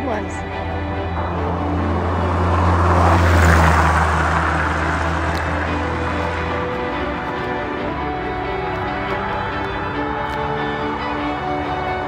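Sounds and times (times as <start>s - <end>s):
background music: 0.0s - 12.0s
low hum: 0.0s - 12.0s
vehicle driving past: 0.4s - 12.0s.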